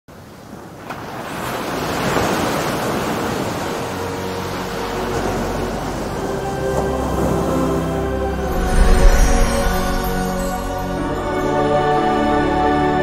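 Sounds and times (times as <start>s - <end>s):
sea waves washing: 0.1s - 12.6s
soft music notes: 4.4s - 13.0s.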